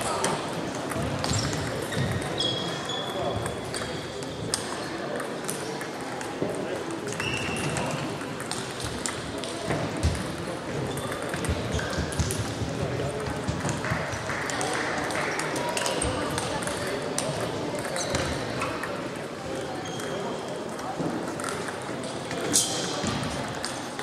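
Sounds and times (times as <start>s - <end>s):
indistinct chatter: 0.0s - 24.0s
table tennis balls clicking: 4.5s - 18.9s.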